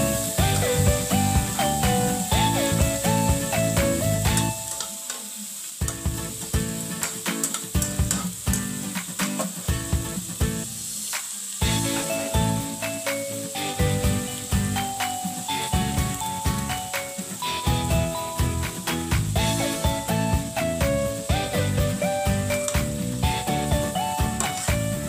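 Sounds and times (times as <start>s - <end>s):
background music: 0.0s - 25.0s
shrimp sizzling in oil: 0.0s - 25.0s.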